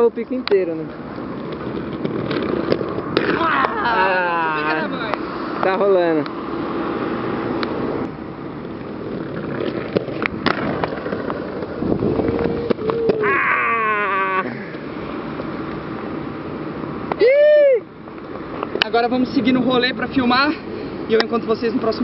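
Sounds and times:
inline skate wheels rolling: 0:00.8 - 0:05.2, 0:08.3 - 0:16.0
drawn-out call falling in pitch: 0:12.4 - 0:14.6.

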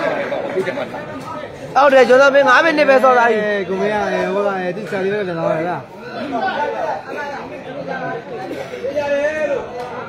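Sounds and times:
men talking over one another: 0:00.0 - 0:10.0.

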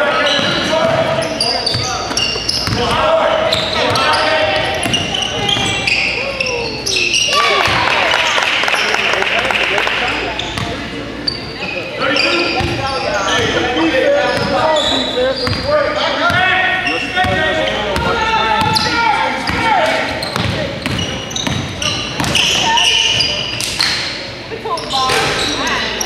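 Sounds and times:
basketball bouncing on wooden floor: 0:20.4 - 0:22.6.

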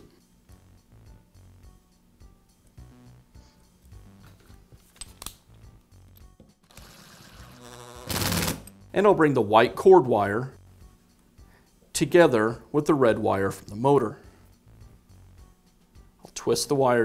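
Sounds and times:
faint background music: 0:00.0 - 0:17.0.

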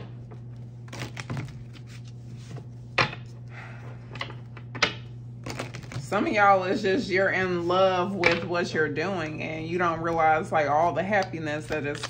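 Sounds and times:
cards being shuffled: 0:00.3 - 0:02.7, 0:10.8 - 0:12.0.

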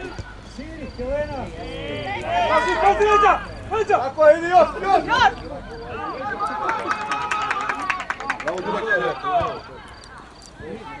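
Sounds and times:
spectators shouting: 0:01.5 - 0:10.0
fast run of sharp claps: 0:06.4 - 0:09.7.

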